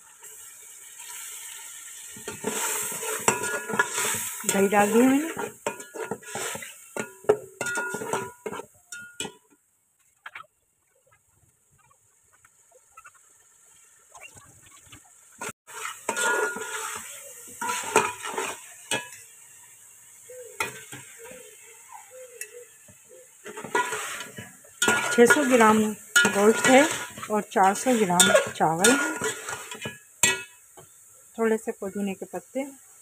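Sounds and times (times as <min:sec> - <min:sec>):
food sizzling: 0:00.0 - 0:33.0
metal spoon scraping a pot: 0:02.2 - 0:09.4, 0:15.4 - 0:19.3, 0:23.4 - 0:30.5.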